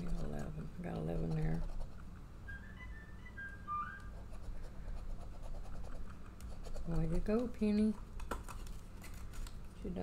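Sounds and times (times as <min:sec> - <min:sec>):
soft whistling: 0:02.4 - 0:04.2.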